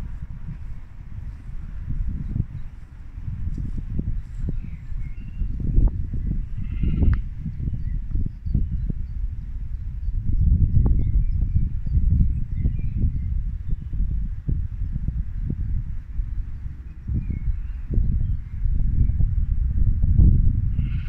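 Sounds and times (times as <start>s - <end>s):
low rumbling with soft thumps: 0.0s - 21.0s
sheep bleating: 6.6s - 7.2s.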